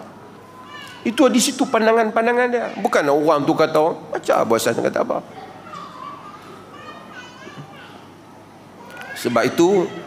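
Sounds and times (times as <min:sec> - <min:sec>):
faint high-pitched voices: 0:05.3 - 0:10.0.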